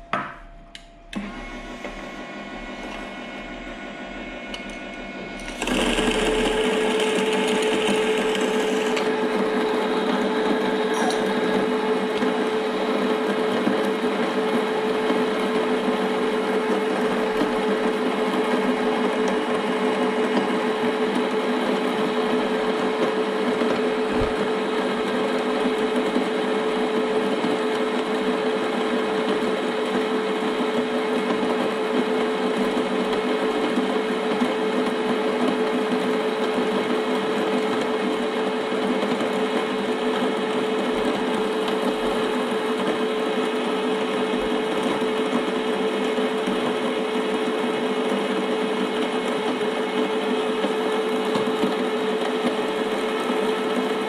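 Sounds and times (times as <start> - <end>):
coffee grinder motor whirring: 1.2 - 54.0.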